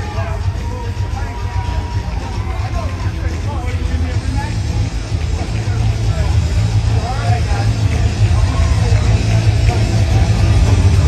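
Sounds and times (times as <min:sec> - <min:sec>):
crowd chatter: 0:00.0 - 0:11.0
heavy bass music on sound system: 0:00.0 - 0:11.0.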